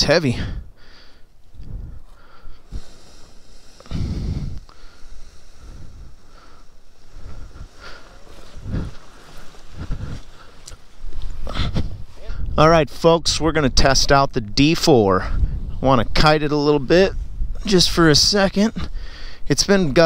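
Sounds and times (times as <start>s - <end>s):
gusty wind buffeting microphone: 0.0s - 20.0s.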